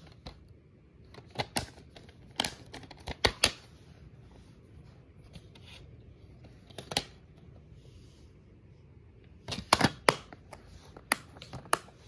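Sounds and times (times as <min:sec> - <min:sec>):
plastic case clicks and snaps: 0:09.5 - 0:11.9.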